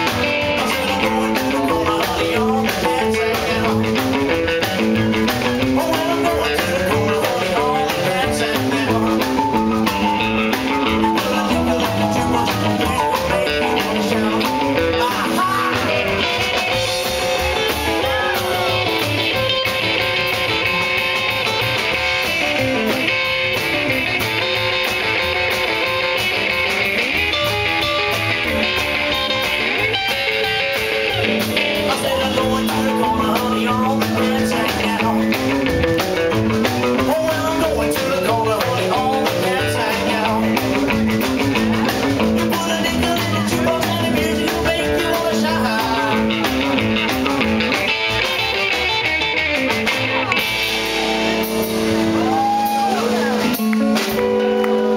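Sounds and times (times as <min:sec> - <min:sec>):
man singing: 0:00.0 - 0:48.9
rock and roll band playing: 0:00.0 - 0:54.9.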